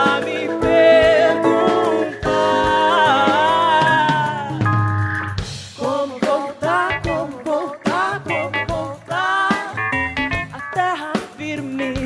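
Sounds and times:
woman singing with wavering pitch: 0.0s - 4.7s, 5.8s - 9.8s
live band playing: 0.0s - 12.0s.

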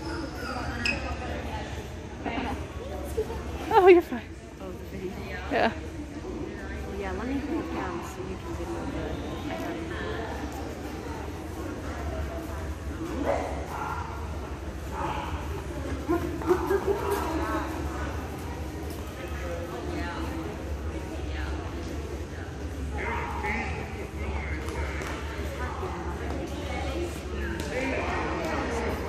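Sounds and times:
indistinct talking: 0.0s - 29.0s.

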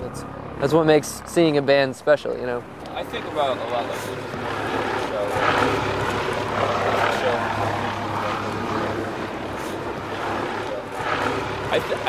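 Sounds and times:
aircraft engine droning overhead: 0.0s - 12.0s
faint voices: 2.8s - 12.0s.

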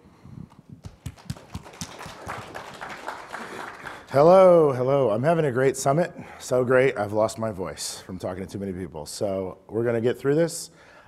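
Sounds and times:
audience clapping: 0.8s - 4.6s.

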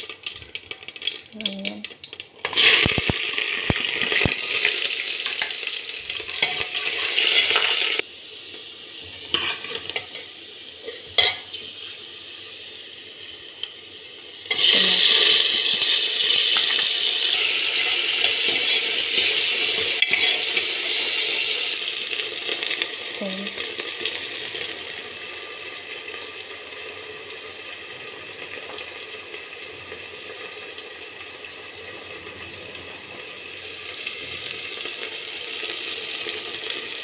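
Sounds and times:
onions sizzling in hot oil: 0.0s - 37.0s.

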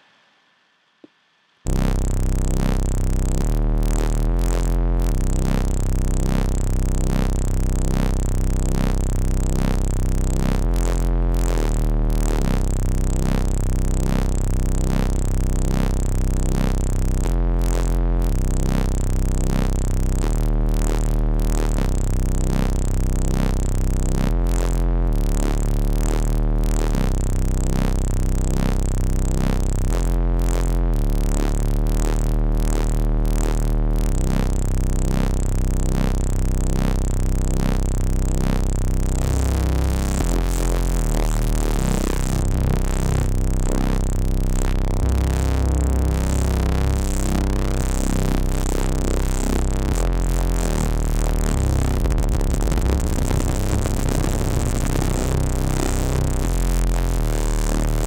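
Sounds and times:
synthesizer bass notes pulsing: 1.7s - 58.0s.

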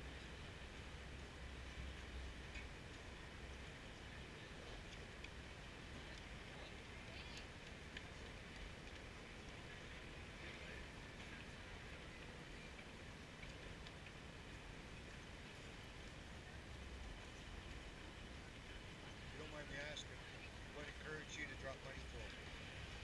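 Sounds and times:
low traffic rumble: 0.0s - 23.0s
passers-by's voices: 1.4s - 23.0s.

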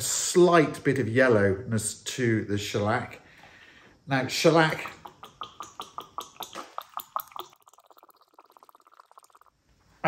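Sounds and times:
liquid pouring into plastic cup: 4.7s - 9.6s.

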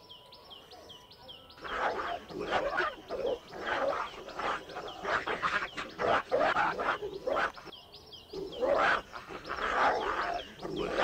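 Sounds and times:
dogs growling and snarling: 1.6s - 7.7s, 8.4s - 11.0s.

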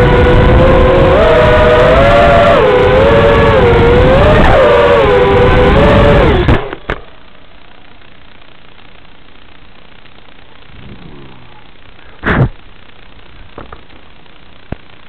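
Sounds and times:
quadcopter motors whining: 0.0s - 7.0s, 10.7s - 12.4s
steady hiss: 6.8s - 15.0s
drone crashing into grass: 12.2s - 12.6s.

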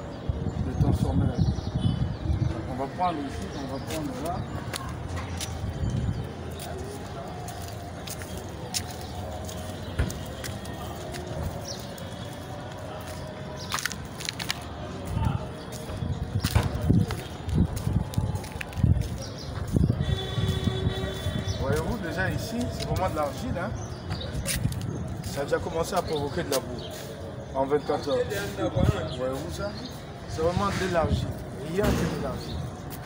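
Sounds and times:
faint voices: 0.0s - 33.0s
low street rumble: 0.0s - 33.0s.

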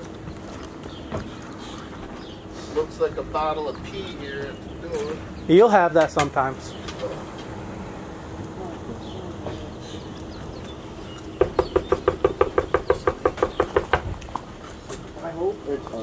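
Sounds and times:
knocks on a front door: 11.4s - 14.2s.

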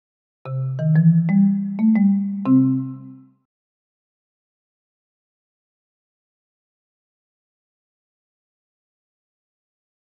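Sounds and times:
musical logo jingle: 0.5s - 3.4s.

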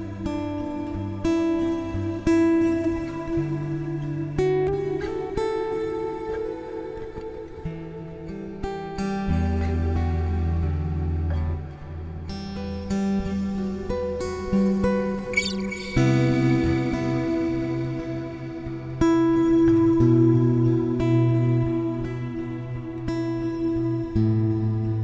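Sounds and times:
fingerpicked acoustic guitar: 0.0s - 25.0s
guitar string squeak: 15.3s - 17.8s.

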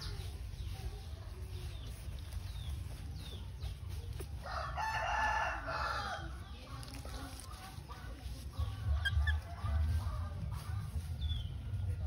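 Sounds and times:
small birds chirping: 0.0s - 12.0s
rooster crowing: 4.4s - 6.2s.

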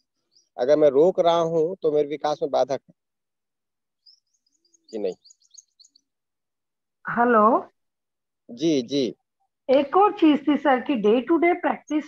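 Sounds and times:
small bird chirping: 0.0s - 1.4s, 3.9s - 6.2s.

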